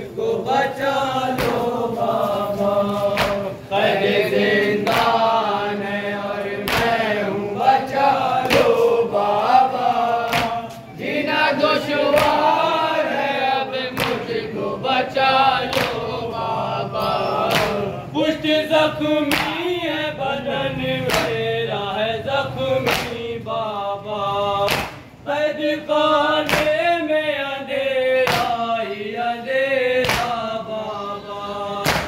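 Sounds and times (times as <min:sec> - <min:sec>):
men chanting in chorus: 0:00.0 - 0:32.0
rhythmic chest slaps: 0:00.3 - 0:19.9, 0:20.8 - 0:21.6, 0:22.3 - 0:23.4, 0:24.5 - 0:25.3, 0:26.2 - 0:27.0, 0:28.2 - 0:28.9, 0:29.8 - 0:30.8, 0:31.7 - 0:32.0.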